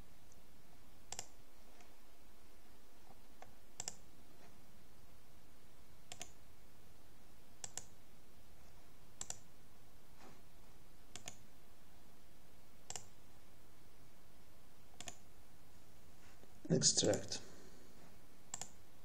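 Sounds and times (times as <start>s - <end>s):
faint room hiss: 0.0s - 19.0s
computer mouse clicks: 1.1s - 1.9s, 3.2s - 4.0s, 6.1s - 6.4s, 7.6s - 8.0s, 9.2s - 9.5s, 11.1s - 11.4s, 12.8s - 13.2s, 14.9s - 15.3s, 18.5s - 18.8s.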